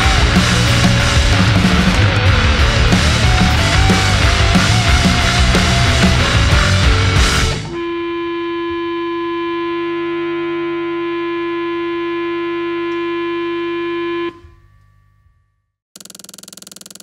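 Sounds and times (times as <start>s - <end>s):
held electronic tone: 0.0s - 14.9s.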